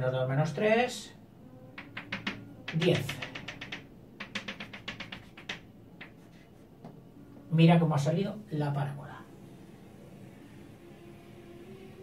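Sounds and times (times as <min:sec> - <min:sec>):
chalk tapping on a blackboard: 0:01.8 - 0:07.0.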